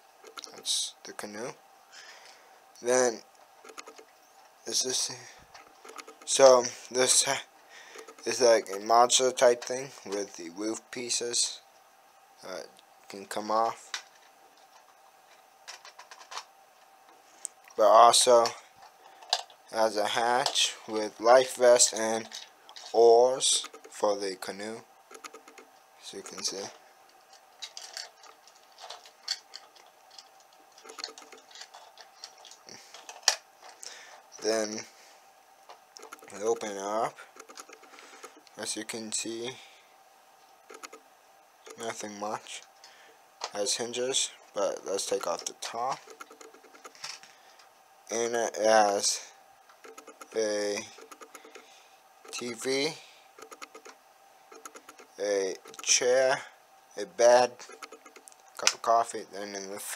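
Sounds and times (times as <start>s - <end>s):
plastic toy bricks clicking: 28.8s - 32.6s, 53.4s - 54.0s, 54.6s - 55.9s.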